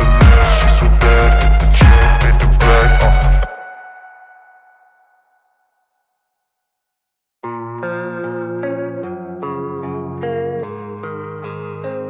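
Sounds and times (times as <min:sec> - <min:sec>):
background music: 0:00.0 - 0:05.0.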